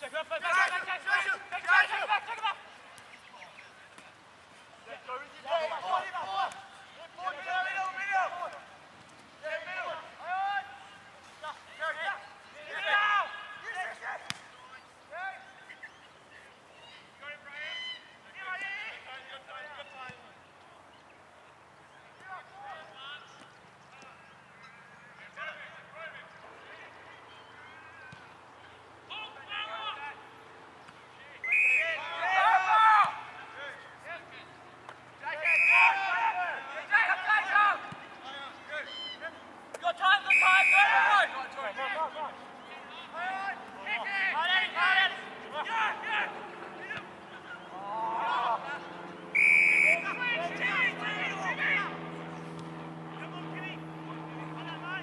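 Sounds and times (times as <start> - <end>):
players shouting: 0.0 - 4.2, 4.8 - 15.9, 25.3 - 30.4, 31.1 - 55.0.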